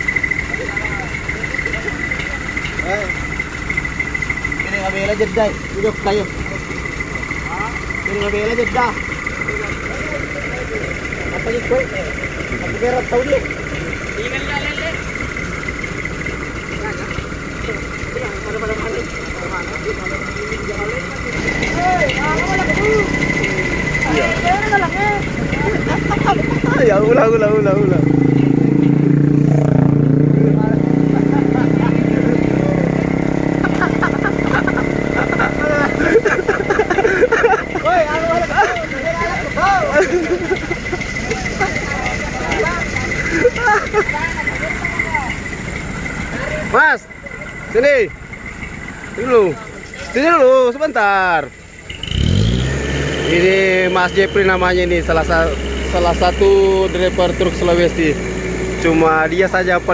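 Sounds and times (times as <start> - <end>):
faint voices talking: 0.0 - 33.2, 37.6 - 52.0
thin high tone: 0.0 - 52.1, 53.1 - 59.9
truck engines idling: 0.0 - 59.9
high-pitched whine: 37.5 - 59.9.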